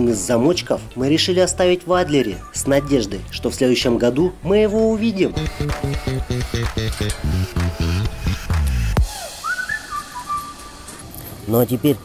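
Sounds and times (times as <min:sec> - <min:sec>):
person whistling: 0:06.8 - 0:10.9.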